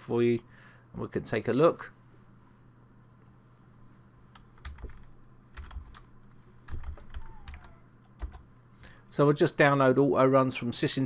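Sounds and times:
keyboard keys clicking: 4.6 - 6.1, 6.7 - 8.4.

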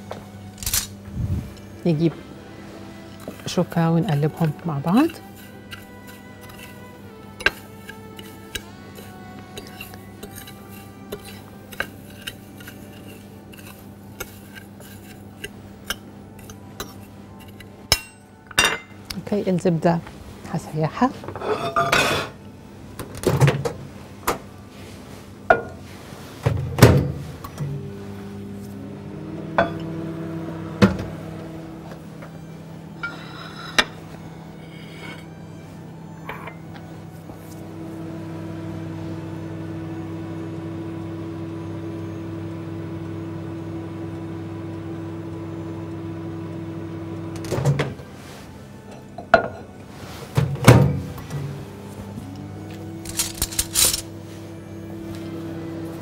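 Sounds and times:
microwave humming: 0.0 - 20.6, 21.6 - 56.0.

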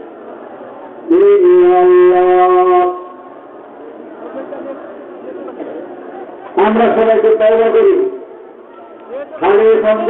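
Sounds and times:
faint hall murmur: 0.0 - 10.0
man chanting long note: 1.1 - 3.2.

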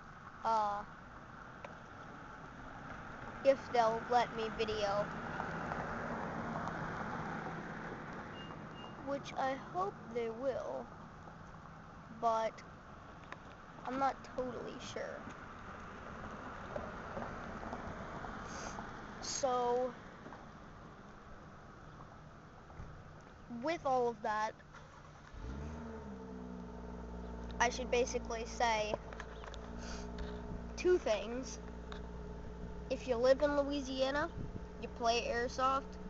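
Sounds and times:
road noise: 0.0 - 36.0
vehicle engine drone: 0.0 - 36.0
engine running: 22.7 - 36.0.

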